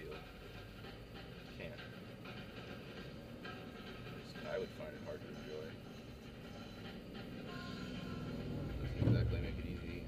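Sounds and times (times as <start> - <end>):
car engine and road hum: 0.1 - 10.0.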